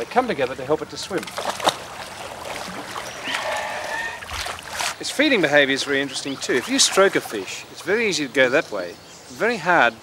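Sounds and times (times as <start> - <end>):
water splashing and sloshing: 0.0 - 8.4.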